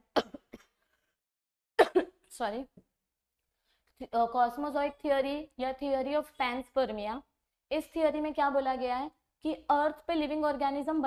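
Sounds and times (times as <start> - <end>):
woman clearing her throat: 0.1 - 0.8, 1.8 - 2.2.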